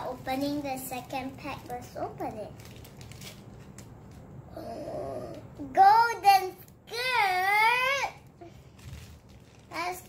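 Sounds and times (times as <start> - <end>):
plastic packet crinkling: 0.0 - 4.3, 8.2 - 10.0
child breathy vocal sound: 4.5 - 5.5.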